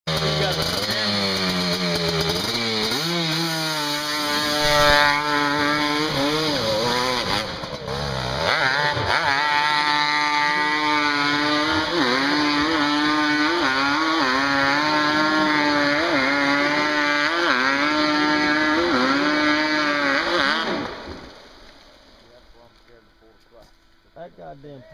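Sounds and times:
two-stroke engine revving: 0.1s - 21.1s.

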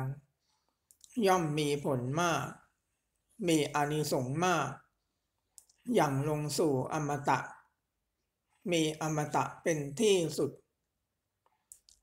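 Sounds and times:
person reading aloud: 0.0s - 11.0s.

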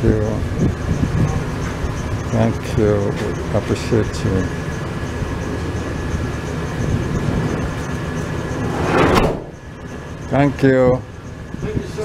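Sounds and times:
steady background rumble: 0.0s - 12.0s
sliding van door slamming shut: 8.8s - 9.6s.

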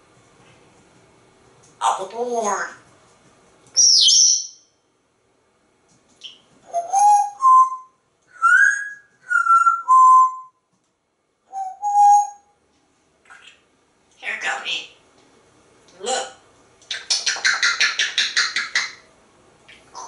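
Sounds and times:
parrot whistling: 3.8s - 4.6s, 6.2s - 10.6s, 11.5s - 12.5s.

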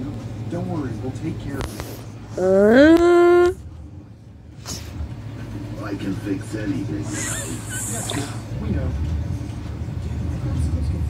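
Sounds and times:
low hum from tablet speaker: 0.0s - 11.0s.

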